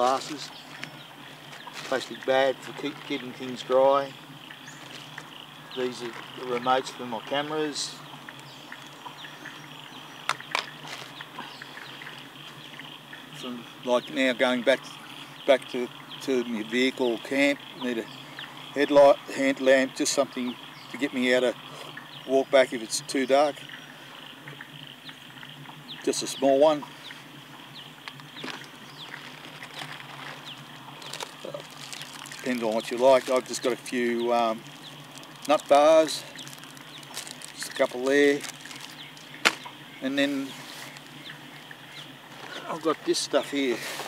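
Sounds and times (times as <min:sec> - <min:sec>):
bird chirps: 0:00.0 - 0:14.2, 0:23.2 - 0:42.8
high insect buzz: 0:00.0 - 0:22.7, 0:23.4 - 0:42.8
rummaging in a backpack: 0:28.4 - 0:33.7, 0:35.0 - 0:39.6.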